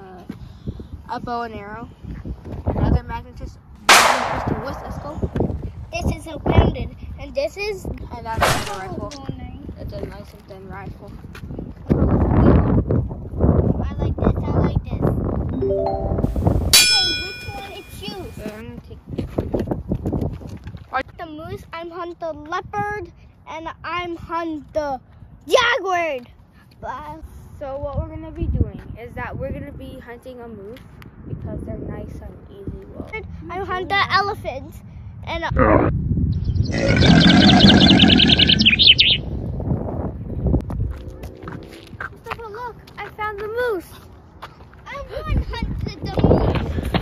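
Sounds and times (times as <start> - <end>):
bright metallic ding: 15.6 - 18.4
bird-like chirping trill: 36.3 - 39.3.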